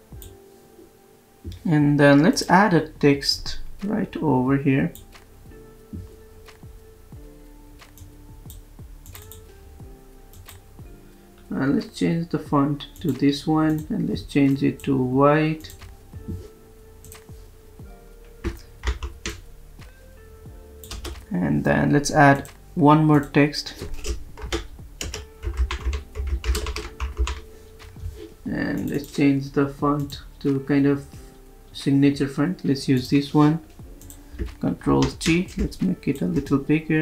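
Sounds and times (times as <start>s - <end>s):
soft background music: 0.0s - 37.0s
keyboard clicks: 7.8s - 9.5s, 10.3s - 10.7s, 15.6s - 17.3s, 18.3s - 19.4s, 20.8s - 21.3s, 22.4s - 28.0s, 28.7s - 29.3s, 33.0s - 36.7s
typing on computer keyboard: 18.4s - 19.4s, 20.8s - 21.2s, 23.8s - 27.5s.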